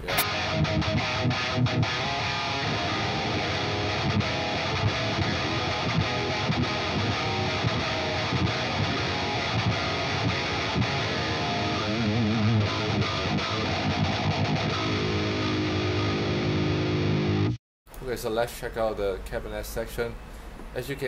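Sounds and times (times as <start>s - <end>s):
distorted electric guitar riff: 0.0s - 17.6s.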